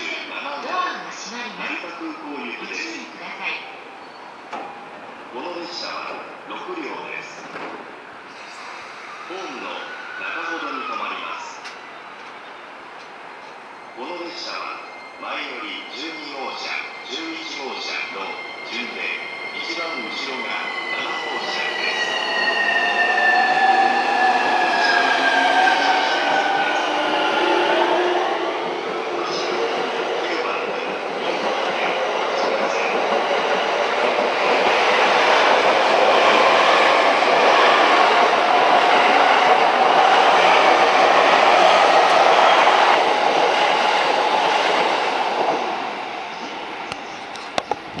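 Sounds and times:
train wheels on rails: 0:07.4 - 0:09.2, 0:11.6 - 0:14.4, 0:16.4 - 0:48.0
electric train whining tones: 0:15.8 - 0:29.7.

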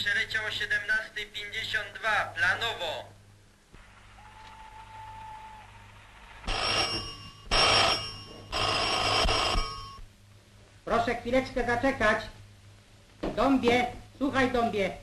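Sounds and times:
telephone bell ringing: 0:06.5 - 0:10.1.

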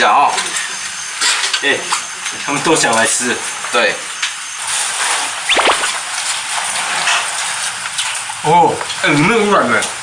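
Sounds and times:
high squeal gliding down: 0:05.5 - 0:06.0.

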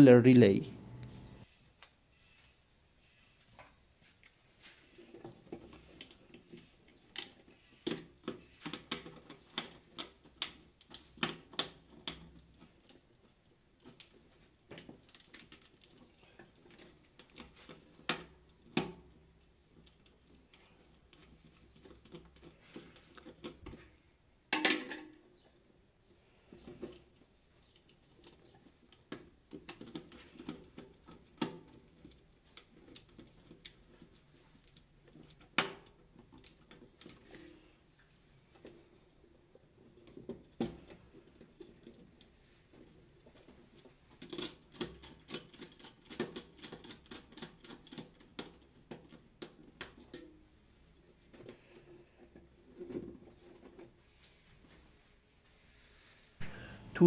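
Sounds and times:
wire handling clicks and scratches: 0:03.5 - 0:24.0, 0:26.4 - 0:54.9.

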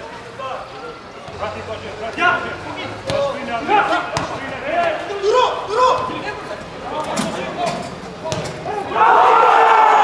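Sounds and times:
players shouting: 0:02.2 - 0:06.4, 0:08.3 - 0:10.0.

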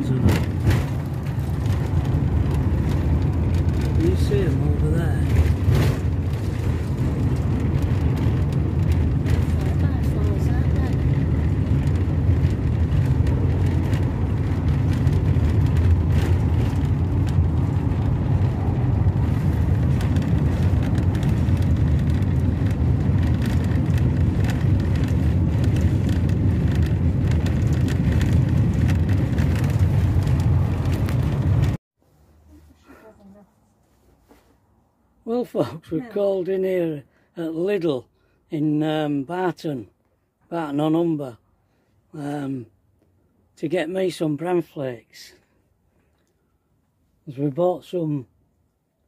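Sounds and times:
engine and tyre rumble: 0:00.0 - 0:49.0.

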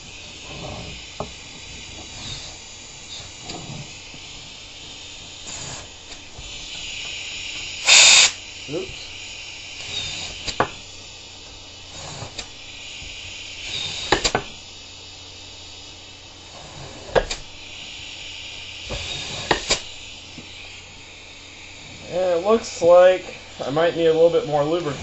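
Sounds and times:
pneumatic cylinder knocks and clacks: 0:00.0 - 0:09.2, 0:09.8 - 0:10.9, 0:11.9 - 0:14.6, 0:16.5 - 0:17.5, 0:18.8 - 0:20.5
steady hiss: 0:00.0 - 0:25.0.

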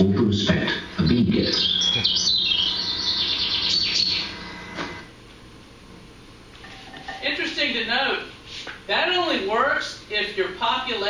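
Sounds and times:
birds chirping through speakers: 0:00.3 - 0:05.1.

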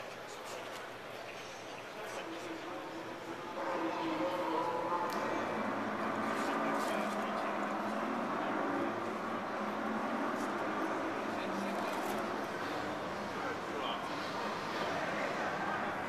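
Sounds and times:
crowd chatter in a large hall: 0:00.0 - 0:16.0.

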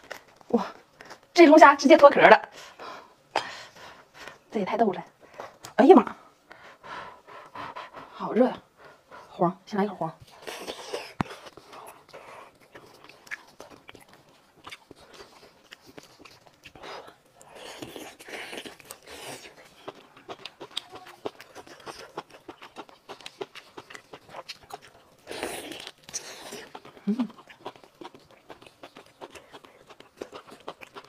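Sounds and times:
biting and chewing: 0:10.2 - 0:31.0.

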